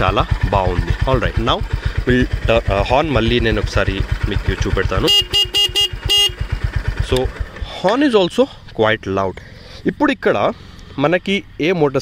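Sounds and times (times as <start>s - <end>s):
motorcycle engine idling: 0.0s - 12.0s
motorcycle horn tooting: 4.8s - 7.0s.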